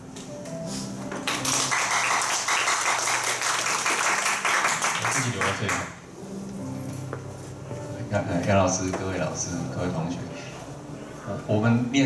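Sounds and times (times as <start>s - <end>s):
audience applauding: 1.2s - 6.0s.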